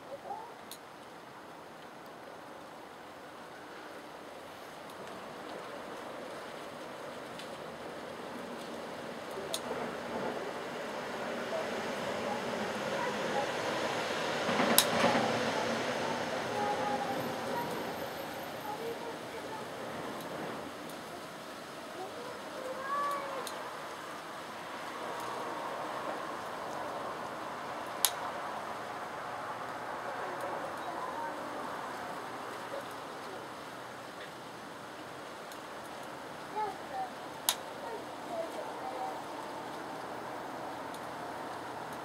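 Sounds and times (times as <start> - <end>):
faint distant voices: 7.8 - 34.4, 36.1 - 42.0.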